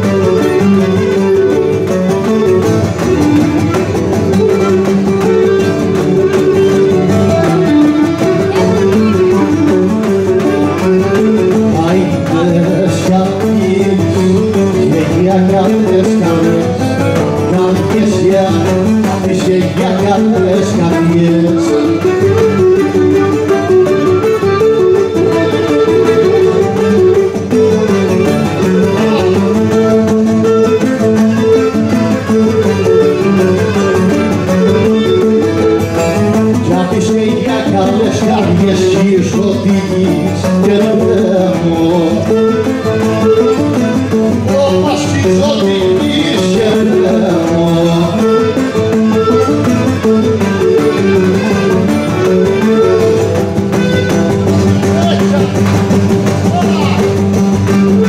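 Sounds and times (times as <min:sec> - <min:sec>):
bowed string melody: 0:00.0 - 0:58.0
plucked string accompaniment: 0:00.0 - 0:58.0.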